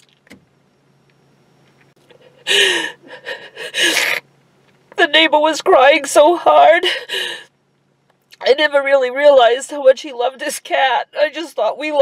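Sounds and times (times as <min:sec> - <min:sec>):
woman sobbing: 0:02.1 - 0:04.2, 0:06.4 - 0:07.5
woman gasping cry: 0:02.3 - 0:04.2.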